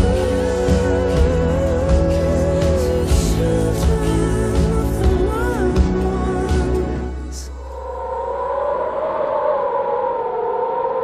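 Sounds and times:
wavering wailing tone: 7.6 - 11.0.

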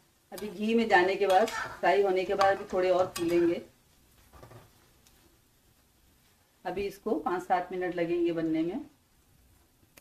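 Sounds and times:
dough sizzling in hot oil: 0.0 - 7.9.

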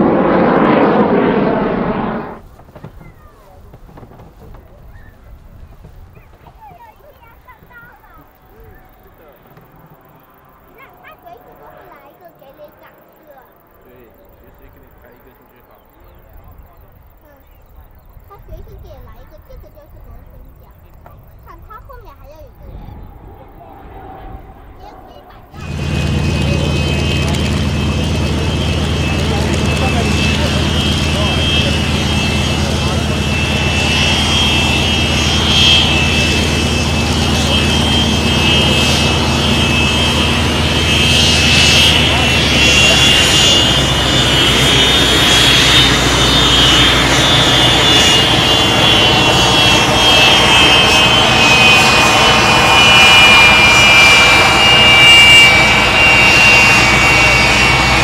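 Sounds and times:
low hum: 0.0 - 2.8, 19.7 - 58.0
turbojet engine whine: 0.0 - 58.0.

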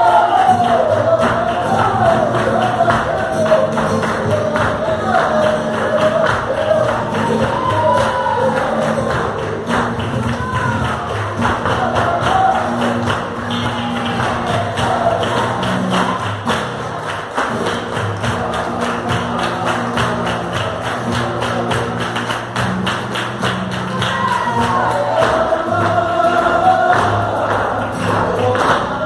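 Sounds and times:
people singing: 0.0 - 22.2, 23.8 - 29.0
flamenco guitars: 0.0 - 29.0
rhythmic hand-clapping: 0.0 - 29.0.

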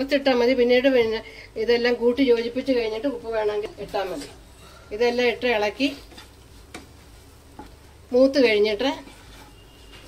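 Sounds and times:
faint sizzle: 0.0 - 10.0
spatula scraping frying pan: 5.9 - 7.2, 8.7 - 10.0
soft spatula taps: 6.1 - 7.9.

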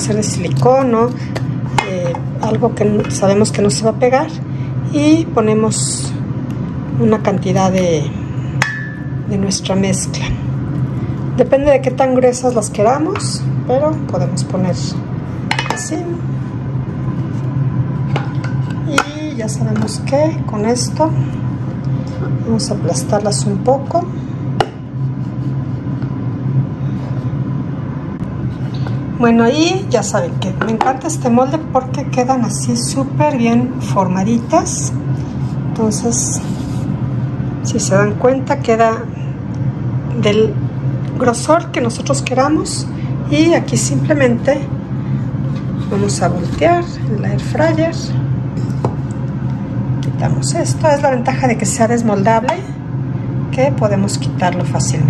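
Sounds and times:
air fryer fan humming: 0.0 - 55.0.

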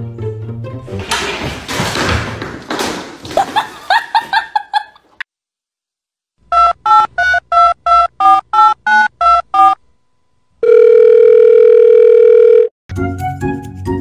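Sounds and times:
music: 0.0 - 1.5, 12.9 - 14.0
phone line tone: 10.6 - 12.7.

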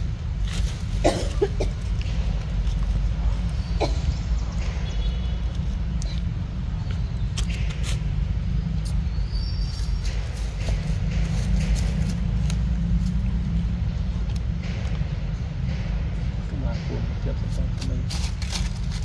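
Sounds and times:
steady low rumble: 0.0 - 19.0.

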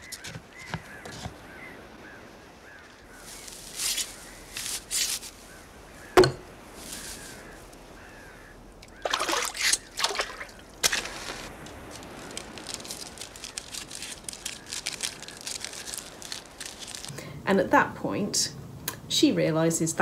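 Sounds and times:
scratchy rustles: 0.0 - 1.4, 2.8 - 5.6, 6.7 - 7.8, 10.8 - 17.1
water trickling and lapping: 0.0 - 17.1
small campfire crackling: 10.6 - 17.4.

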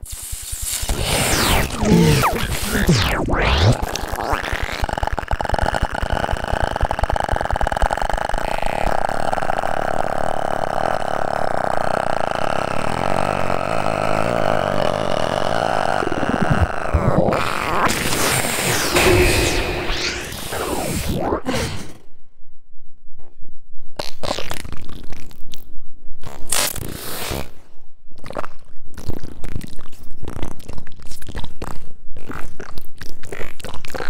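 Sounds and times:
pulsing buzzy electronic drone: 0.0 - 21.5
swooping pitch sweeps: 0.9 - 4.5, 18.0 - 21.5.

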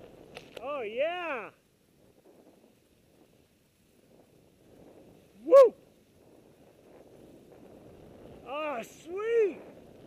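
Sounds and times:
person whooping: 5.4 - 5.8.

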